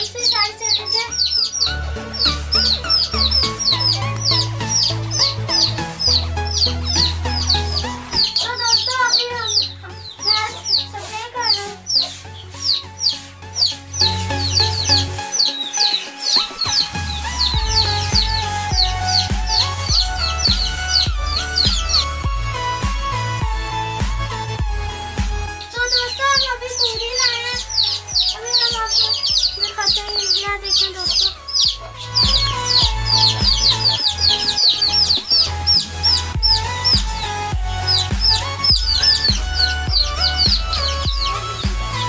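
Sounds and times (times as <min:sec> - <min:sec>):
chicks peeping: 0:00.0 - 0:22.3, 0:25.6 - 0:42.0
background music with bass: 0:00.0 - 0:42.0.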